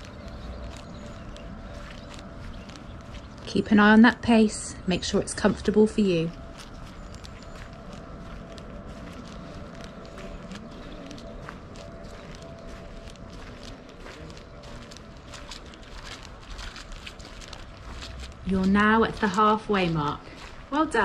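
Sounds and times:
footsteps on muddy path: 0:00.0 - 0:21.0
steady outdoor hiss: 0:00.0 - 0:21.0.

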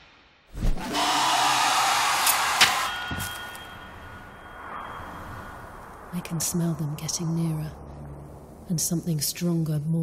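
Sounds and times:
hissing creature scream: 0:00.8 - 0:02.9
sharp hits: 0:01.8 - 0:06.6
faint high ring: 0:02.9 - 0:06.2.

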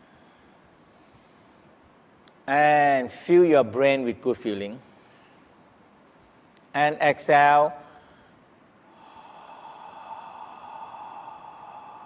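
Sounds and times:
man exhaling slowly: 0:08.0 - 0:12.0.

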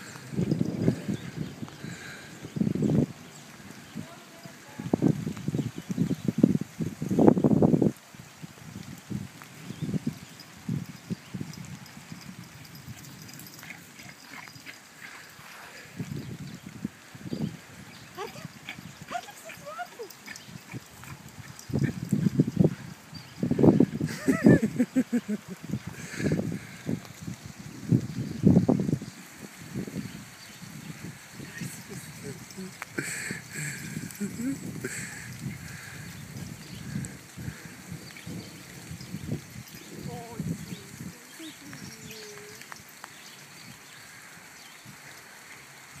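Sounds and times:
animals squeaking and yipping: 0:12.6 - 0:15.4, 0:17.9 - 0:22.5.

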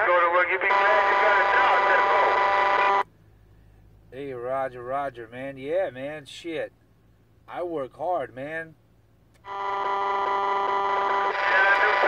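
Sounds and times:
radio buzzing signal: 0:00.1 - 0:03.0, 0:09.5 - 0:12.0.

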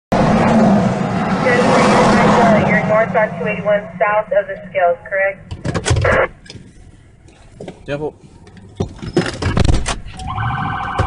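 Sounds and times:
traffic noise: 0:00.1 - 0:11.0.

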